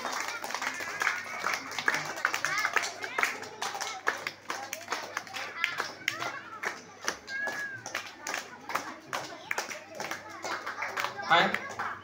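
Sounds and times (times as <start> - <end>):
audience clapping: 0.0 - 12.0.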